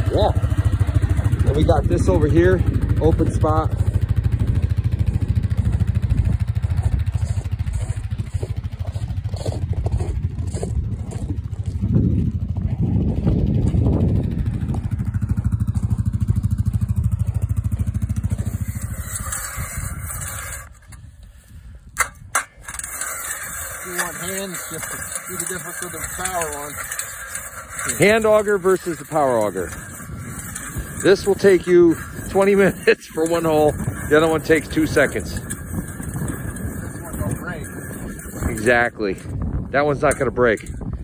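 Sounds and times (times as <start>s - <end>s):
vehicle engine running: 0.0s - 41.0s.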